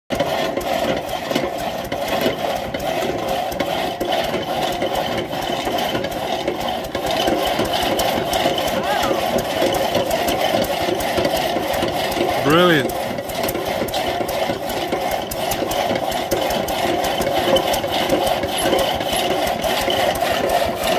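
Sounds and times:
saw engine clattering and knocking: 0.1s - 20.9s.

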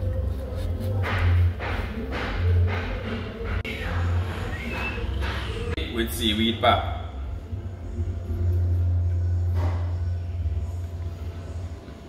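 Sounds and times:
low steady rumble: 6.8s - 12.0s.

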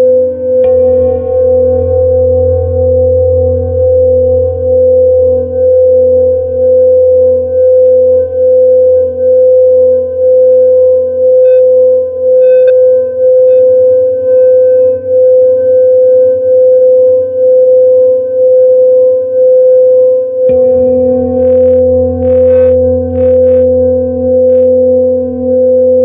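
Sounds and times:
singing bowl ringing tone: 0.0s - 26.0s.

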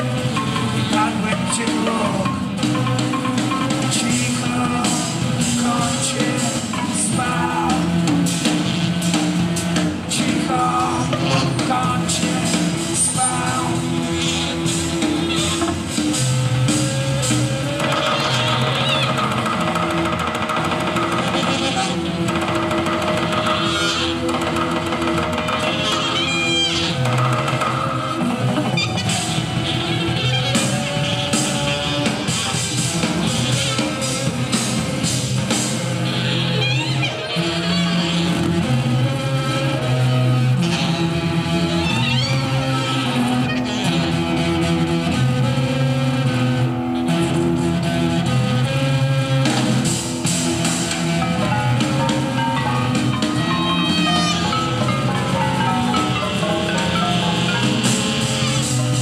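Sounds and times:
guitar: 0.0s - 59.0s
live band playing: 0.0s - 59.0s.

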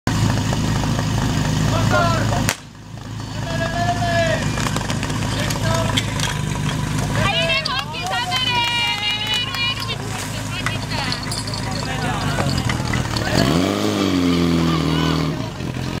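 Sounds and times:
pump engine running: 0.1s - 16.0s
loud sharp crack: 2.4s - 2.8s
crowd shouting and cheering: 3.2s - 16.0s.

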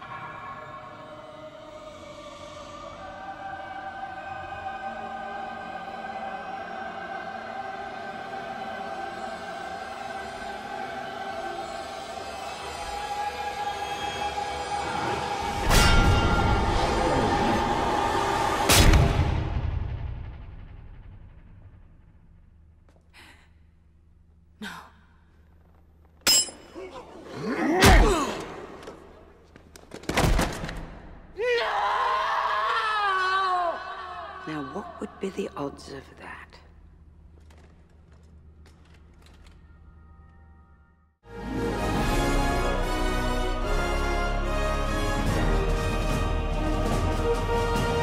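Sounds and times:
choir holding long chords: 0.0s - 19.5s, 41.2s - 48.0s
orchestral music: 41.2s - 48.0s.

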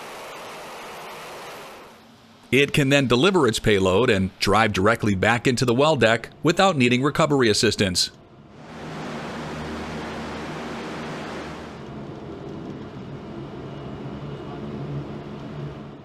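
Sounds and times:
rushing noise: 0.0s - 7.0s, 8.4s - 16.0s
gas turbine engines humming: 0.0s - 16.0s.

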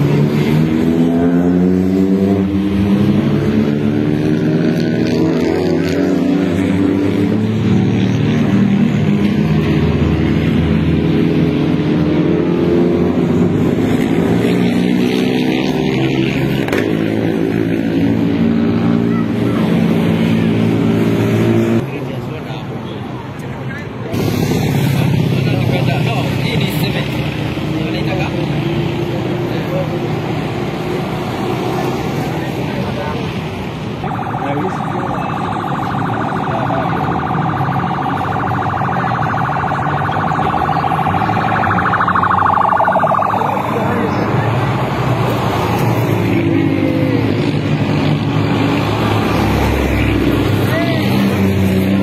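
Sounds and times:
spectators' voices: 31.6s - 45.0s.

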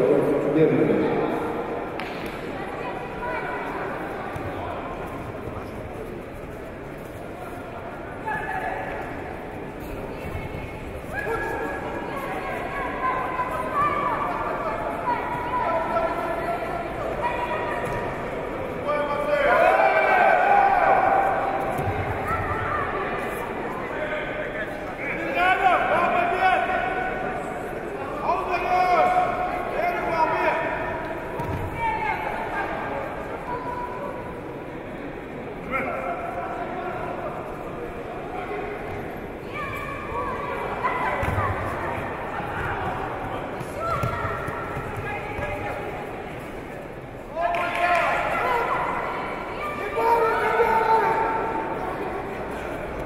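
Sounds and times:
background murmur: 0.0s - 53.0s
crowd din: 0.0s - 53.0s
voices calling out in a hall: 0.0s - 53.0s.

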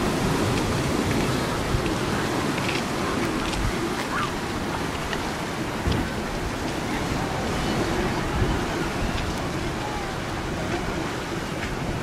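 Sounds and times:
sea surf: 0.0s - 12.0s
wind buffeting microphone: 0.0s - 12.0s.

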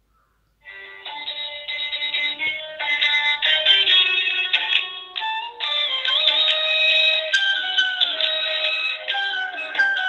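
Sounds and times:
light music song with sliding notes: 0.6s - 10.0s.

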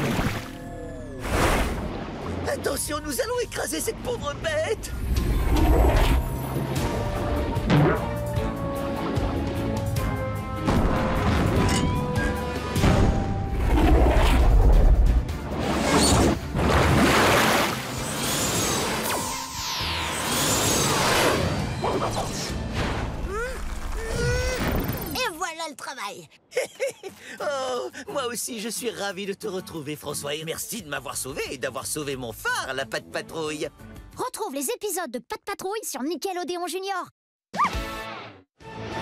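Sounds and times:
cartoon action music: 5.2s - 9.8s.

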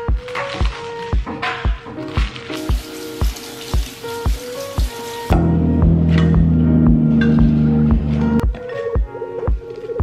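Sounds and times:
music with steady beat: 0.0s - 10.0s
tap water running into colander: 2.1s - 5.4s.

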